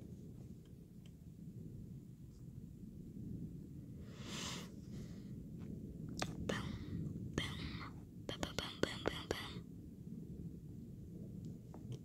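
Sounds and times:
low rumble: 0.0 - 12.0
person whispering: 6.2 - 6.8, 7.4 - 9.6.

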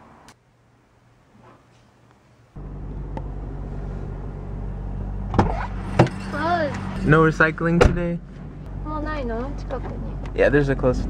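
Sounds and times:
car engine hum inside cabin: 2.6 - 11.0.

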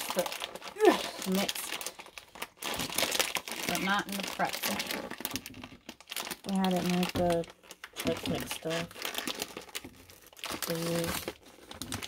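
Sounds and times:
plastic snack bag crinkling: 0.0 - 12.0.

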